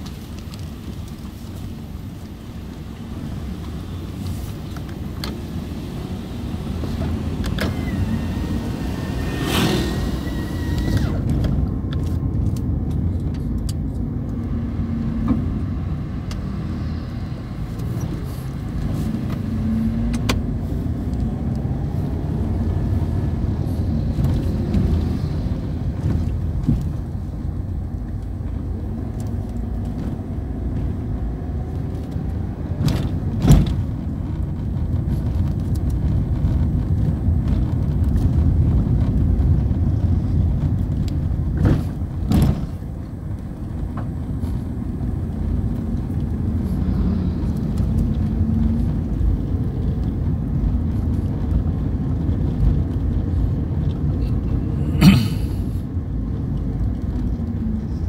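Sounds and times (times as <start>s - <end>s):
car engine and tyres rumbling: 0.0s - 58.0s.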